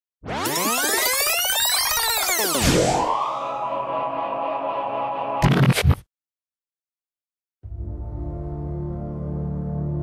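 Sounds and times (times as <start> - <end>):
synthesized rising tones: 0.2 - 5.4.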